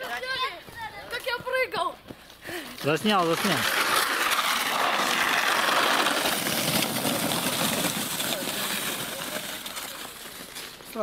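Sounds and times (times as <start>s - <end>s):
plastic sled scraping over snow: 2.8s - 11.0s.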